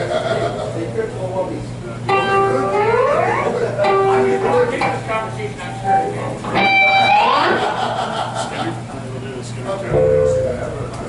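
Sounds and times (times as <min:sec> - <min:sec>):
people talking: 0:00.0 - 0:11.0
electric guitar note sliding upward: 0:09.9 - 0:11.0.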